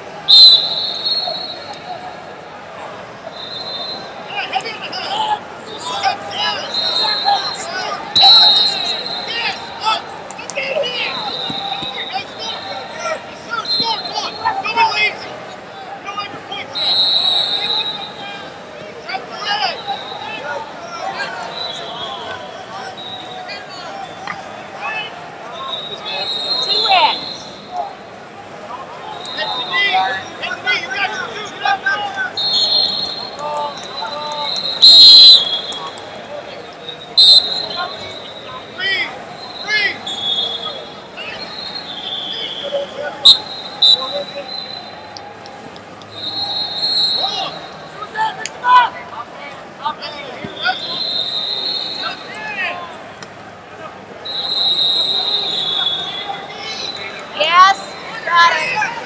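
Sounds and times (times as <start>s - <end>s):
referee whistle blasts: 0.3s - 2.0s, 3.3s - 4.4s, 5.8s - 9.8s, 10.9s - 12.7s, 16.7s - 18.5s, 21.4s - 24.3s, 25.6s - 27.7s, 29.1s - 29.9s, 32.3s - 36.1s, 36.8s - 45.1s, 46.1s - 47.9s, 50.4s - 52.5s, 54.2s - 57.2s
people calling out: 36.9s - 45.2s.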